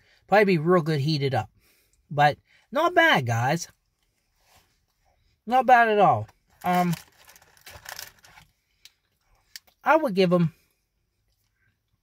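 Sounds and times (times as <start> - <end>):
man speaking: 2.1 - 3.7, 5.5 - 7.0, 9.8 - 10.6.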